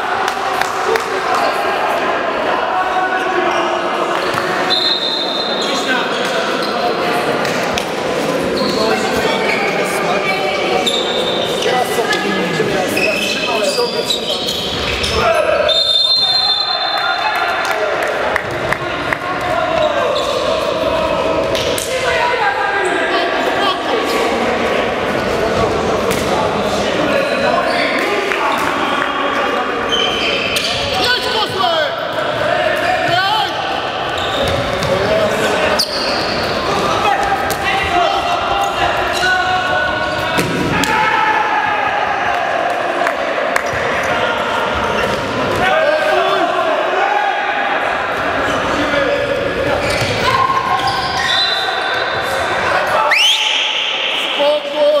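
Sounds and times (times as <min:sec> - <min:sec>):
players shouting: 0:08.4 - 0:55.0.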